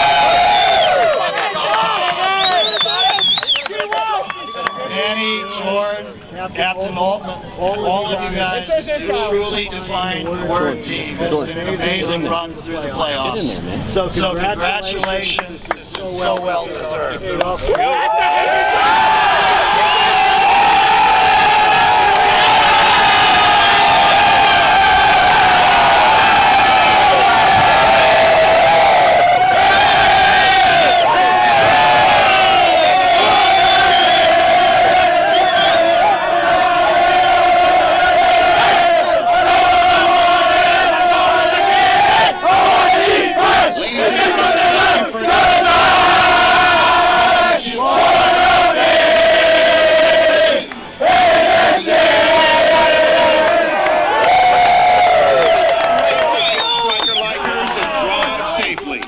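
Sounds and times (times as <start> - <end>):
group yelling and cheering: 0.0 - 6.2, 17.6 - 58.7.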